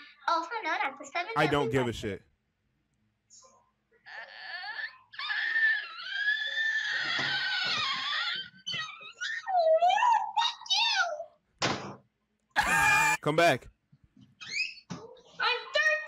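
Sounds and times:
person wailing: 0:12.6 - 0:13.3
swooping cries: 0:12.6 - 0:13.3.

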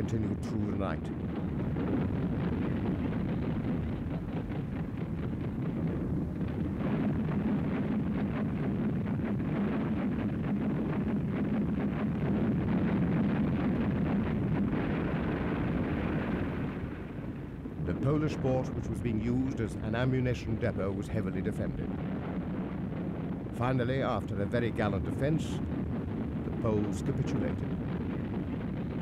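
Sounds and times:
small crackling reports: 0:00.0 - 0:01.2, 0:17.8 - 0:22.0, 0:23.3 - 0:25.7, 0:26.4 - 0:29.0
artillery bombardment rumble: 0:00.0 - 0:29.0.

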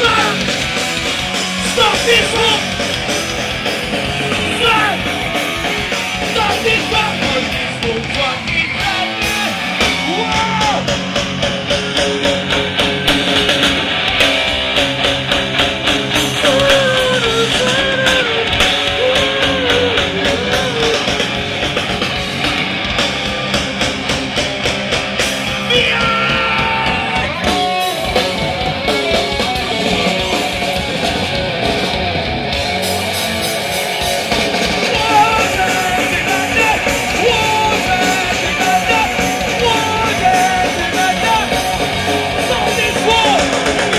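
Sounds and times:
person singing and shouting: 0:00.0 - 0:00.6, 0:01.6 - 0:02.8, 0:04.2 - 0:05.4, 0:06.2 - 0:10.9, 0:16.4 - 0:21.3, 0:25.5 - 0:28.0, 0:34.8 - 0:43.7
drums: 0:00.0 - 0:43.9
electric guitar: 0:00.0 - 0:43.9.

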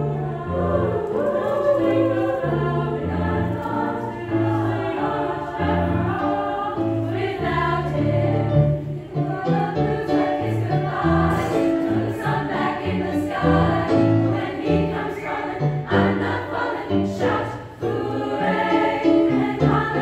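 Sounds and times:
girls choir singing: 0:00.0 - 0:20.0.

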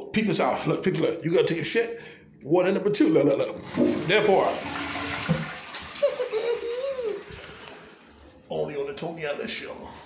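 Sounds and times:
toilet flushing: 0:03.6 - 0:07.9
man laughing: 0:06.0 - 0:07.3.

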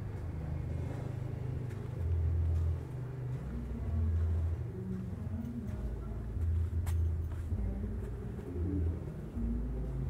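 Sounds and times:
vehicle engine rumble: 0:00.0 - 0:10.0.

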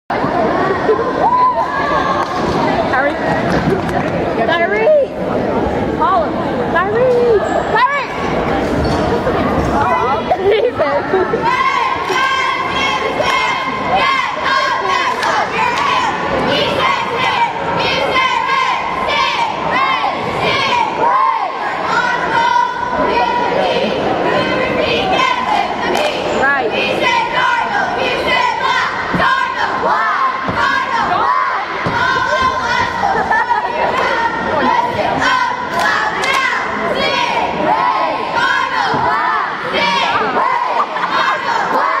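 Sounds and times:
crowd voices: 0:00.1 - 0:42.0
girls shouting a cheer: 0:11.4 - 0:42.0.

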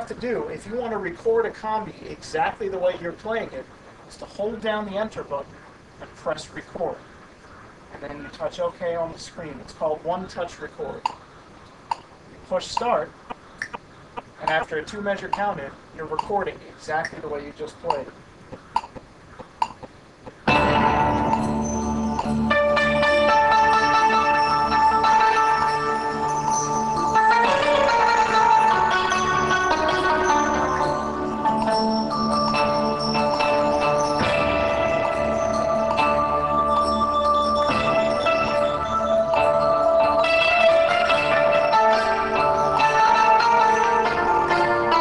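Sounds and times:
count-in clicks: 0:12.7 - 0:20.4
keyboard playing sustained chords: 0:20.4 - 0:45.0.

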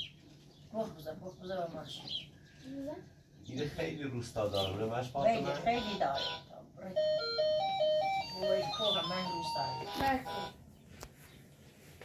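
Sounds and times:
voices: 0:00.7 - 0:07.4, 0:08.2 - 0:10.6
electronic toy beeping tune: 0:05.7 - 0:10.6.

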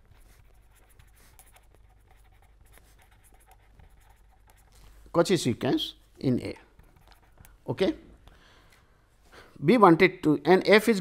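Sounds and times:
pen scratching on paper: 0:00.0 - 0:04.9, 0:06.8 - 0:07.6.

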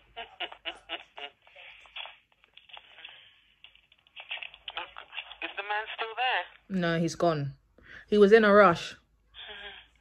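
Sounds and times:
woman talking through phone speaker: 0:04.7 - 0:07.5.

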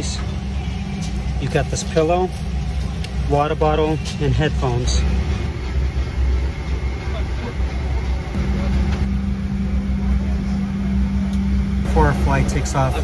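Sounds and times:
low cabin rumble: 0:00.0 - 0:13.0
steady hum: 0:00.0 - 0:13.0.

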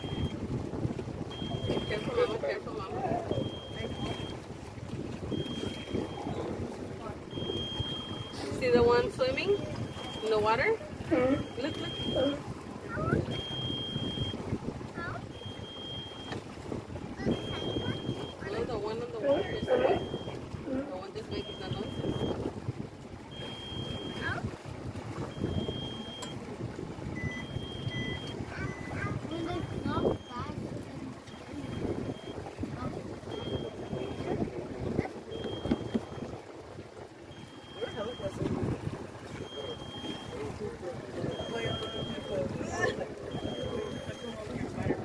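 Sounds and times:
water slapping hull: 0:00.0 - 0:45.0
wind on microphone: 0:00.0 - 0:45.0
faint high electronic beep: 0:01.3 - 0:02.4, 0:05.3 - 0:06.5, 0:11.4 - 0:12.4, 0:37.4 - 0:38.4, 0:39.4 - 0:40.5, 0:41.3 - 0:42.5, 0:43.3 - 0:44.5
calls or voices: 0:01.3 - 0:04.5, 0:05.2 - 0:14.2, 0:17.0 - 0:22.4, 0:27.8 - 0:36.3, 0:37.1 - 0:45.0.

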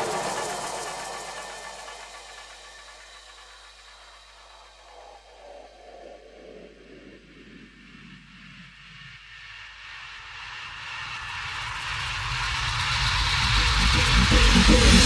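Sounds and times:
noise-sweep riser hiss: 0:00.0 - 0:06.7.

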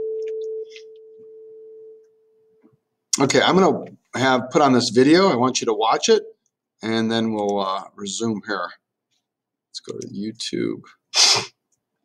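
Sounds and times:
faint steady pure tone: 0:00.0 - 0:02.7.

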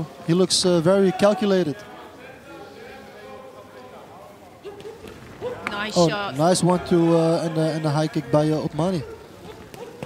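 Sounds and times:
faint background voices: 0:01.0 - 0:10.0.

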